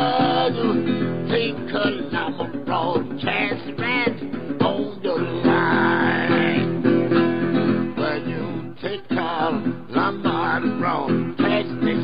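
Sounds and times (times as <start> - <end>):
resonator guitar blues playing: 0.0 - 12.0.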